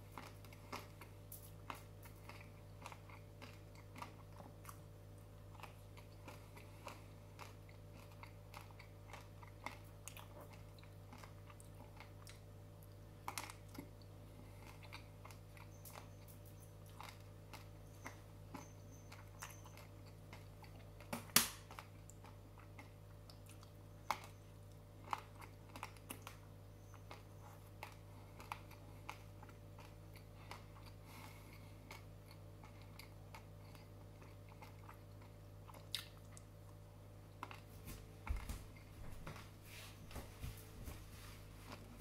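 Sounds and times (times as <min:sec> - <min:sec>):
chewing crunchy bread: 0:00.0 - 0:39.6, 0:40.4 - 0:42.0.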